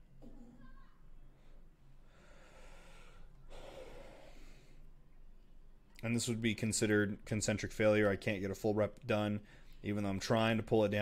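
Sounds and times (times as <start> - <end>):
man breathing hard: 1.5 - 4.9.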